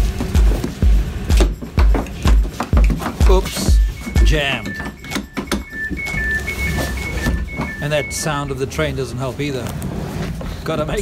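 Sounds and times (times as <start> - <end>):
train door warning beeps: 2.9 - 8.9.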